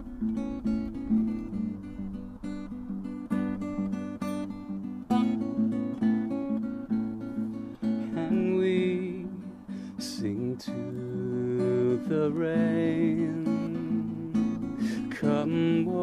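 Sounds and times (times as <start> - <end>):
acoustic guitar picking and strumming: 0.0 - 16.0.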